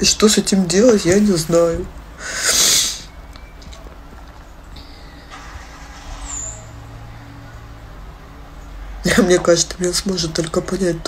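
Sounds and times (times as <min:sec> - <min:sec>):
woman's sharp intake of breath: 0:02.2 - 0:03.1.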